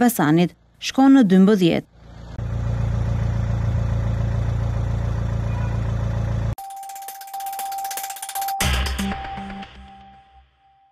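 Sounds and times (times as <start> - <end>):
vehicle engine idling: 1.9 - 6.6
jingle music: 6.6 - 10.8.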